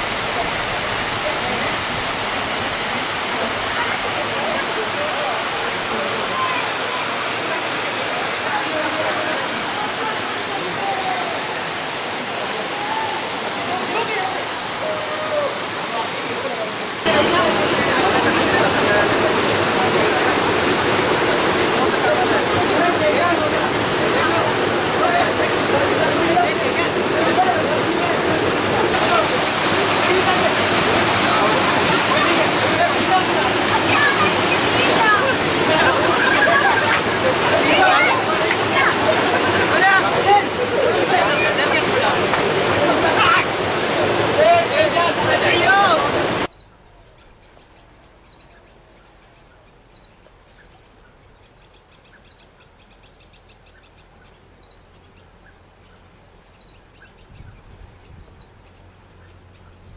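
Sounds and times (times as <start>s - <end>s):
people chattering: 0.0s - 46.5s
water rushing over rocks: 0.0s - 46.5s.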